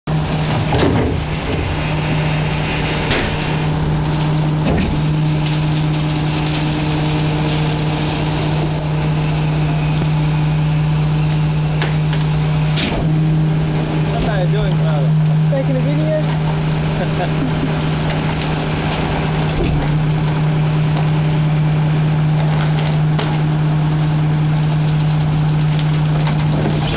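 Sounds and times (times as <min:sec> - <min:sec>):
garbage truck engine and hydraulic hum: 0:00.1 - 0:26.9
knocks and clunks: 0:00.5 - 0:01.8.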